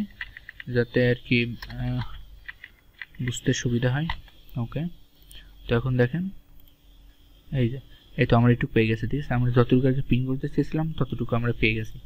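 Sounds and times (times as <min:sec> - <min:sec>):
computer keyboard keystrokes: 0:00.1 - 0:00.7, 0:01.6 - 0:03.4
man talking: 0:00.7 - 0:02.2, 0:03.2 - 0:05.0, 0:05.7 - 0:06.4, 0:07.5 - 0:12.0.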